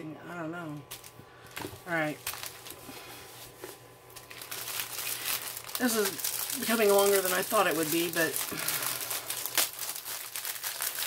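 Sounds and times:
plastic wrapping crinkling: 0.9s - 11.0s.

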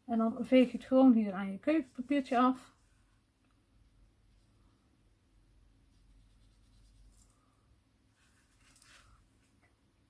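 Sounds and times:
soft rustles of brush and paper: 0.2s - 4.9s, 5.6s - 9.8s.

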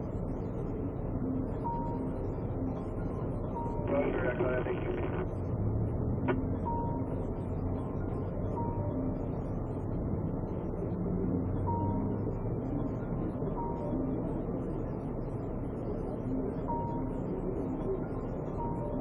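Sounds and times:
radio transmission burst: 3.8s - 5.3s.

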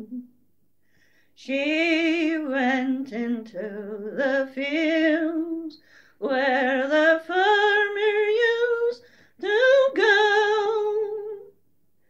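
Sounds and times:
woman singing unaccompanied: 1.4s - 11.5s.

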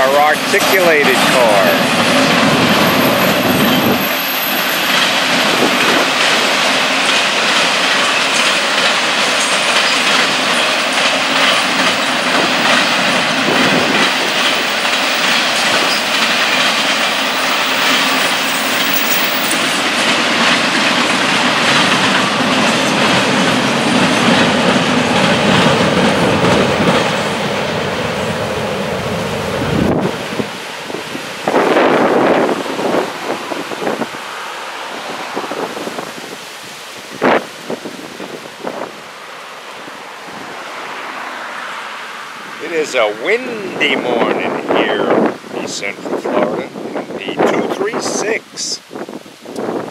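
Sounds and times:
freight train rolling past: 0.0s - 49.9s
wind buffeting microphone: 1.7s - 7.6s, 11.4s - 39.1s, 43.5s - 49.9s.

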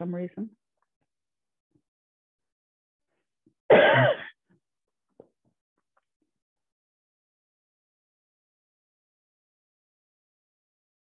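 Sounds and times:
woman coughing: 3.7s - 4.4s.

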